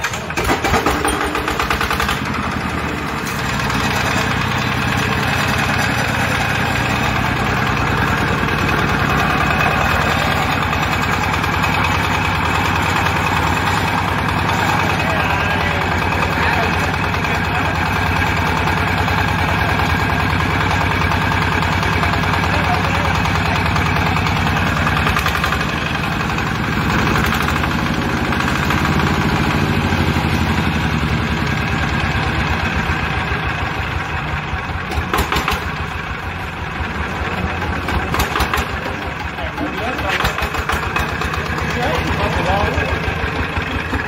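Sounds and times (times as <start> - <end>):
diesel engine chugging: 0.0 - 44.0.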